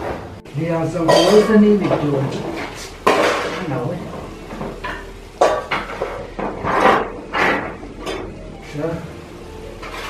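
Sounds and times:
dishes and cutlery clinking: 1.1 - 8.4, 9.8 - 10.0.

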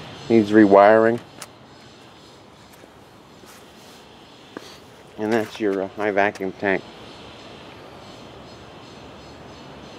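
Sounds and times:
faint outdoor background noise: 0.0 - 9.9.

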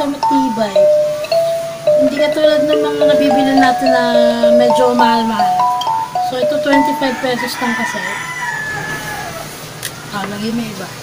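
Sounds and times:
rooster crowing: 6.8 - 9.6.

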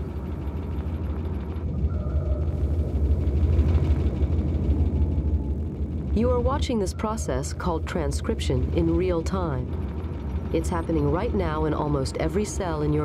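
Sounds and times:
low rumbling drone: 0.0 - 13.0.

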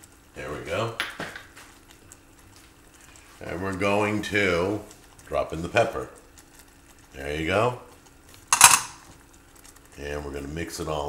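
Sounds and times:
kitchenware clink: 8.5 - 9.0.

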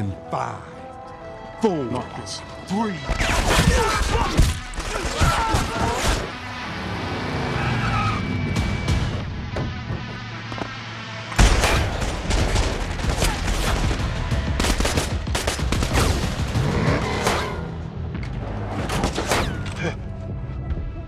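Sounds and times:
film score: 0.0 - 21.0
rapid gunfire: 11.4 - 16.7.

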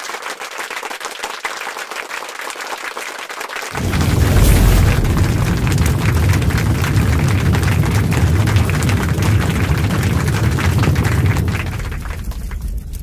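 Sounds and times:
low rumble with crackling: 3.8 - 13.0.

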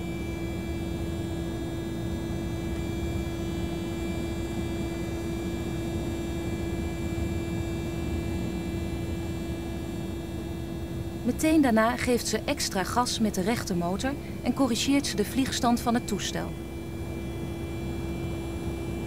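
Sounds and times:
propeller aircraft engine drone: 0.0 - 19.0.

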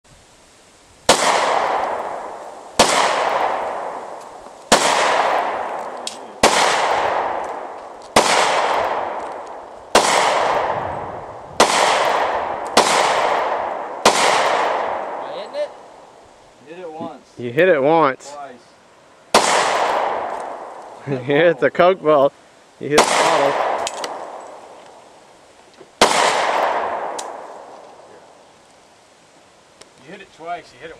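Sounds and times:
pistol shots with echo: 1.1 - 4.0, 4.7 - 9.2, 9.9 - 10.8, 11.6 - 15.3, 19.3 - 20.7, 23.0 - 24.5, 26.0 - 27.6.

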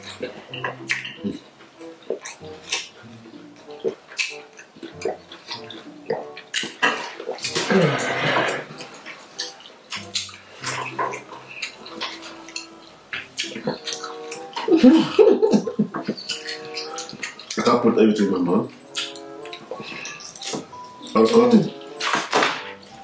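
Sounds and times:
wet chewing and lip smacks: 0.0 - 7.6, 8.8 - 14.8, 15.6 - 22.8
person humming mm: 7.6 - 8.7.

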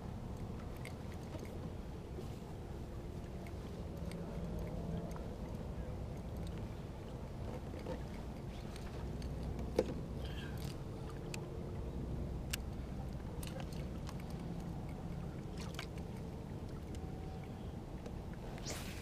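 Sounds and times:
low hum: 0.0 - 19.0
fishing gear clicks and knocks: 3.3 - 5.3, 7.4 - 11.4.

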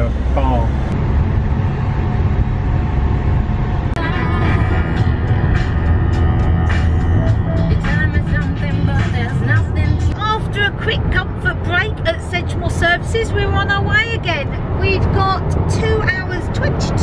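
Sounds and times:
campervan driving rumble: 0.0 - 17.0
music: 4.0 - 10.2.

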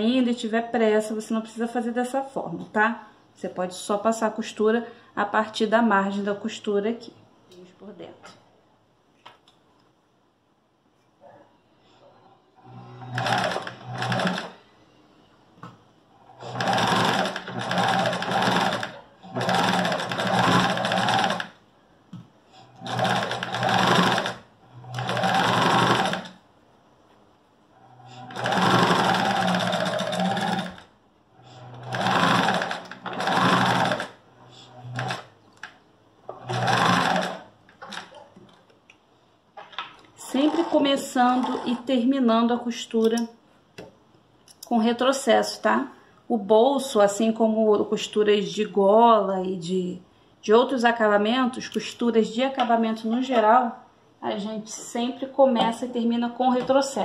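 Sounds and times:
electric sewing machine stitching: 12.6 - 14.6, 16.2 - 21.6, 22.6 - 26.4, 27.8 - 35.3, 36.3 - 38.1, 40.3 - 41.9.

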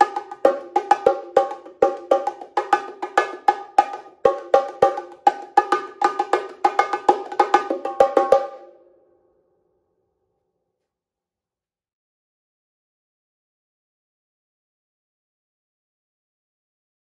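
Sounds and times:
bongos played by hand: 0.0 - 8.8.

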